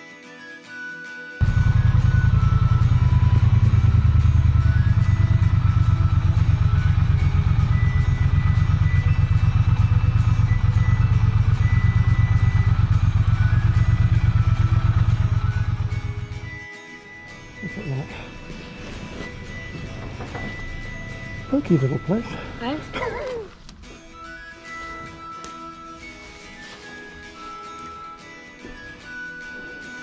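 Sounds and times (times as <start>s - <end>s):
motorcycle engine at low revs: 1.4s - 16.5s.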